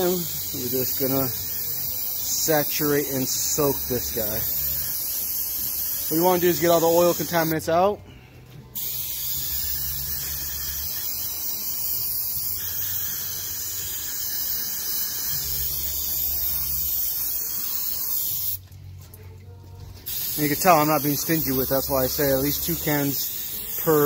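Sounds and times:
aerosol can spraying hiss: 0.0 - 7.5, 8.8 - 18.6, 20.1 - 24.0.

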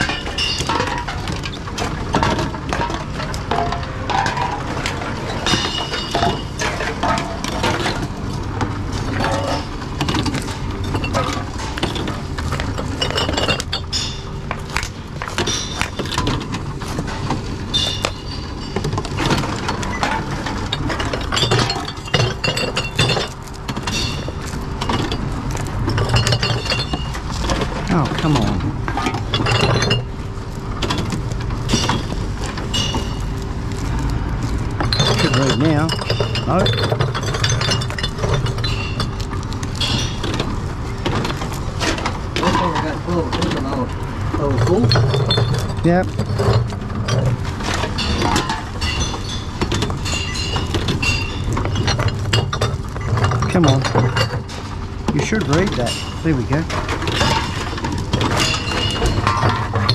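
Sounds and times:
bottles and cans clinking: 0.0 - 59.9
vending machine hum: 0.0 - 59.9.

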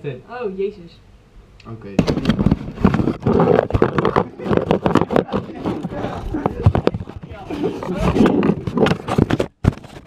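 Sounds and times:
hands rubbing on camera microphone: 2.2 - 10.0
voices: 3.8 - 8.4.

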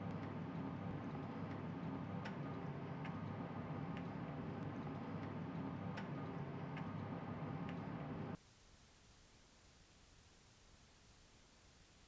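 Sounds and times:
light ticking: 0.0 - 8.1
steady low hum: 0.0 - 8.4.

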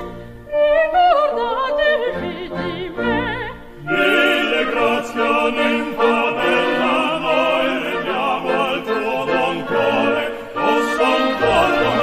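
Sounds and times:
operatic singing: 0.4 - 12.0
orchestral chords: 2.4 - 12.0.

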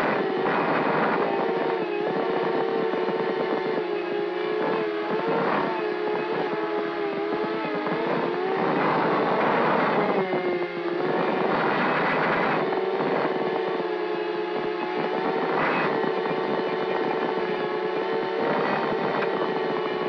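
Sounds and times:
drone motors whining: 0.0 - 20.0.

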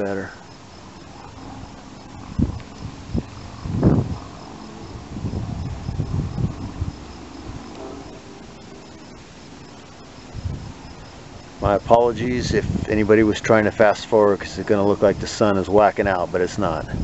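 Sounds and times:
cricket chirping: 0.0 - 17.0.

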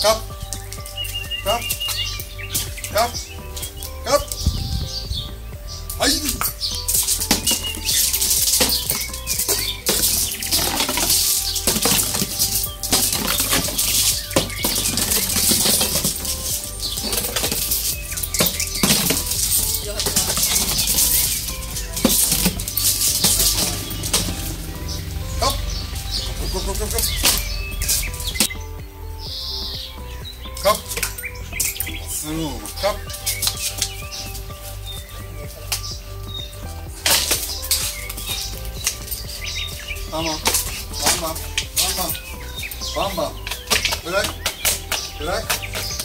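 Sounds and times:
background music: 0.0 - 46.0
plastic bottle clattering on paving: 6.3 - 24.8, 40.3 - 46.0.

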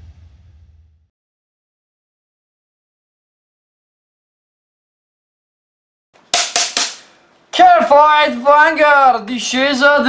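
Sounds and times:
sharp cracking percussive hits: 6.2 - 7.2
person speaking: 6.9 - 10.0.

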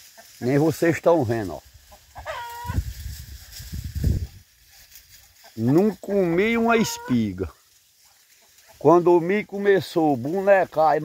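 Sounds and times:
chicken call: 2.0 - 2.8, 6.7 - 7.4.

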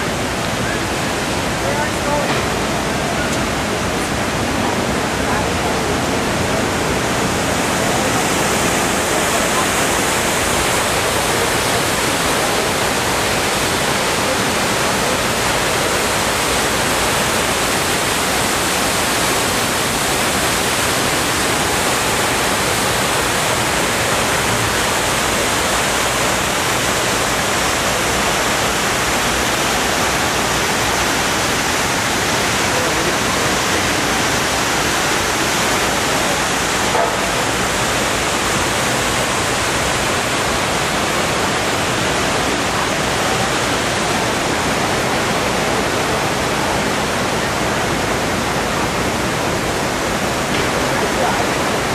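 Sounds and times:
waterfall rushing: 0.0 - 51.9.

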